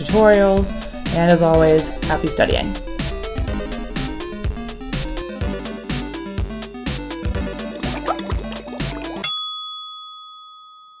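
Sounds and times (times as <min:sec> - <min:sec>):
upbeat jingle: 0:00.0 - 0:09.5
bright bell ding: 0:09.2 - 0:11.0.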